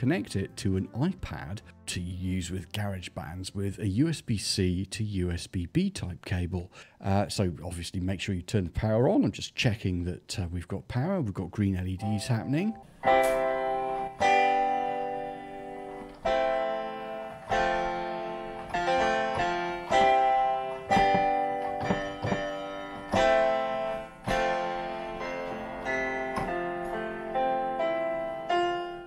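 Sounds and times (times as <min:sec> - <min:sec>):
keyboard chords: 0:12.0 - 0:29.0.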